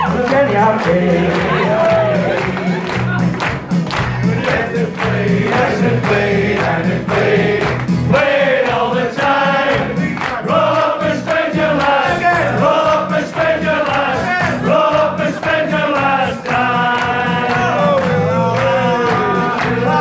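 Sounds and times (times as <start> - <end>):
man singing into a microphone: 0.0 - 2.8, 14.1 - 20.0
backing music: 0.0 - 20.0
group singing along: 0.7 - 3.0, 4.2 - 20.0.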